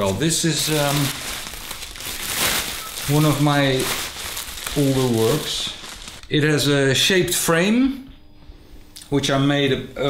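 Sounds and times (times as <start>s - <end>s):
plastic sheeting rustling: 0.0s - 6.2s.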